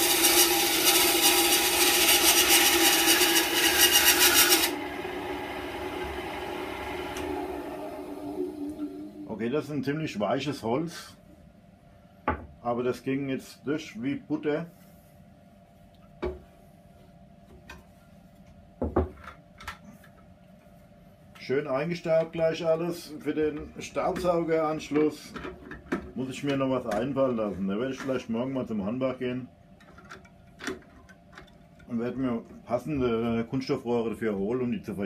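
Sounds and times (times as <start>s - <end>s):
wood and metal knocking on bench: 18.8s - 19.2s.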